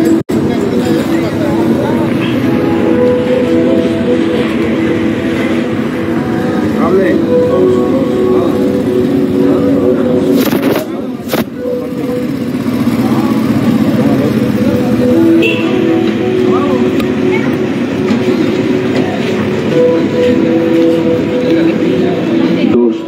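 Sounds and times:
motorcycle and vehicle engines: 0.0s - 23.0s
steady held tones: 0.0s - 23.0s
voices: 0.0s - 23.0s.

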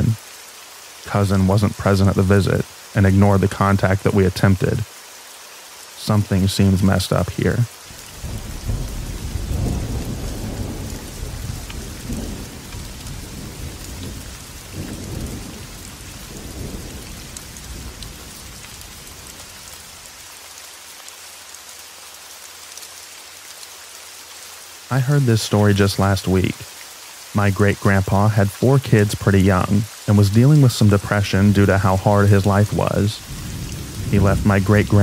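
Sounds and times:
steady rain: 0.0s - 35.0s
thunder rumbling: 7.9s - 20.1s, 28.9s - 35.0s.

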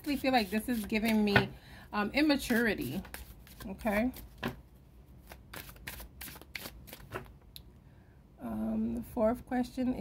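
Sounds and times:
cards being shuffled: 0.1s - 1.4s, 2.4s - 4.6s, 5.2s - 7.3s.

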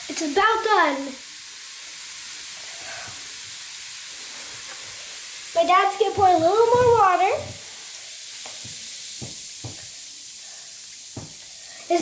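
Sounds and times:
fizzing hiss in water: 0.0s - 12.0s.

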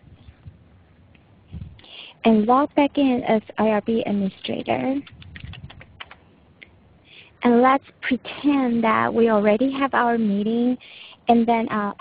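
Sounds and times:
typing on computer keyboard: 5.0s - 6.2s.

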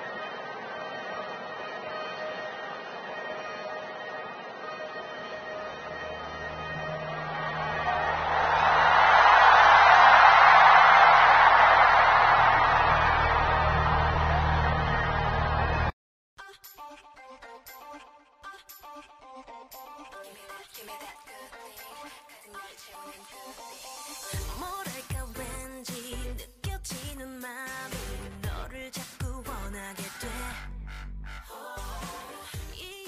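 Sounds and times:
crowd cheering and screaming: 0.0s - 15.9s.

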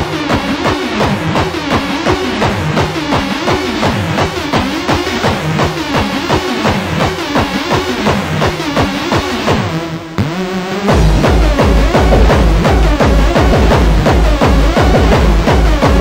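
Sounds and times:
distorted kick drum pounding: 0.0s - 16.0s.

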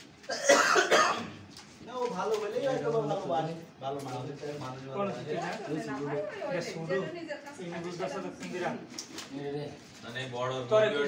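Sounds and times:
person coughing: 0.3s - 1.4s.

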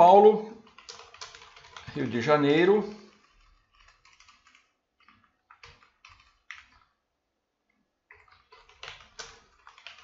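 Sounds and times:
faint keyboard typing: 0.0s - 10.0s.

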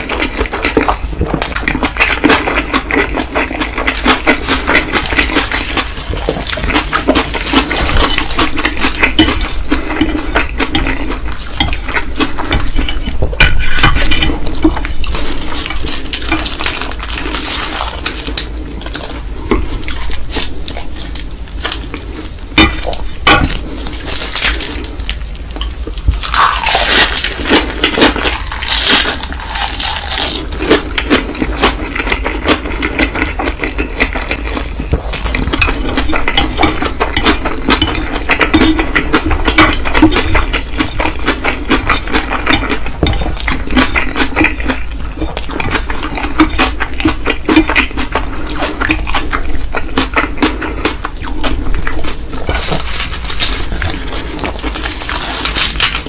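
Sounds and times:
noodles being chewed: 0.0s - 56.0s.

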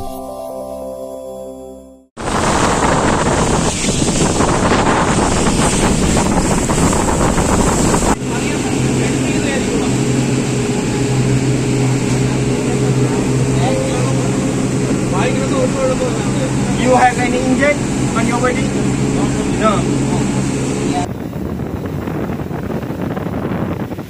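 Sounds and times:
boat engine drone: 2.2s - 24.0s
water rushing past hull: 2.2s - 24.0s
wind buffeting microphone: 2.2s - 24.0s.

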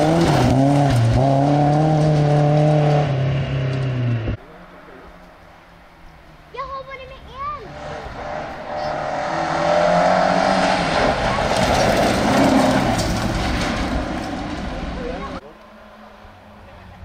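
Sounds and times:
car engine revving: 0.0s - 6.5s, 7.6s - 17.0s
tyre and road noise: 0.0s - 17.0s.

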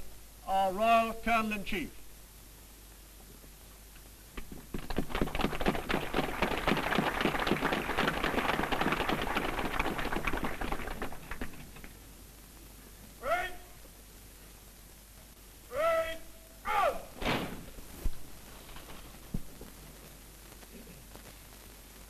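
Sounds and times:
audience applauding: 4.8s - 12.0s
man shouting drawn-out calls: 13.2s - 13.8s, 15.7s - 17.2s.

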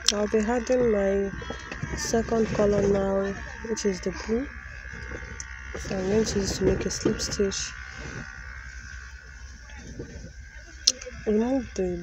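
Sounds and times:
faint high buzz: 0.0s - 12.0s
steady low hum: 0.0s - 12.0s.

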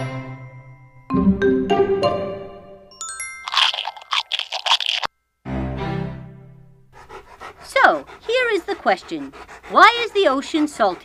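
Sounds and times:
light children's music: 0.0s - 3.6s
cartoon crunching sound effect: 3.5s - 5.1s.

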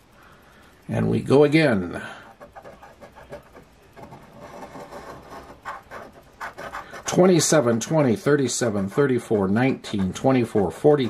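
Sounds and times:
coin scraping lottery ticket: 2.4s - 11.0s.

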